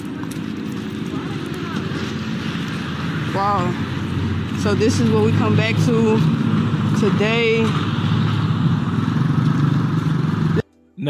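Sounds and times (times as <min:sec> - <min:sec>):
loud street noise: 0:00.0 - 0:10.6
low engine rumble: 0:00.0 - 0:10.6.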